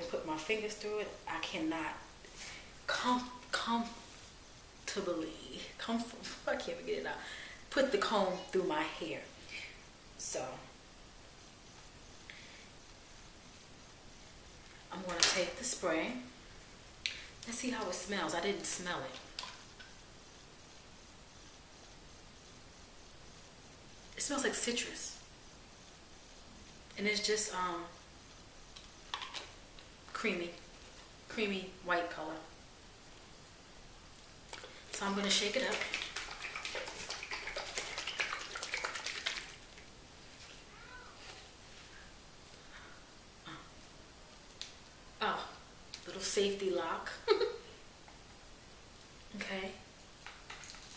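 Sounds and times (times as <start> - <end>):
faint hiss: 0.0 - 50.9
spray bottle being shaken: 34.5 - 39.8.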